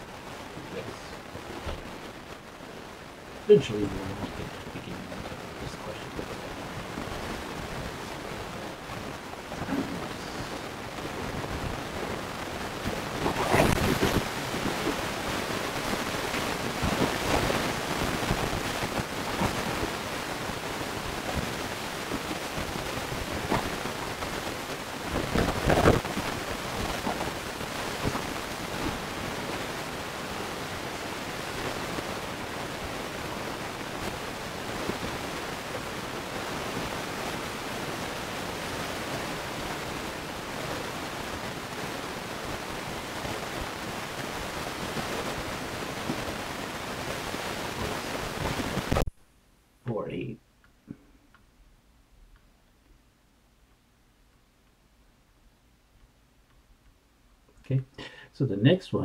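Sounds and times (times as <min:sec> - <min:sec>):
microphone hiss: 0:00.0 - 0:59.0
muffled handling rustle: 0:03.6 - 0:20.0.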